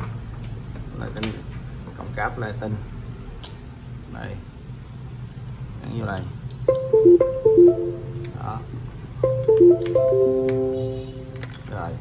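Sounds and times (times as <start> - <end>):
high electronic beep: 6.5 - 8.4.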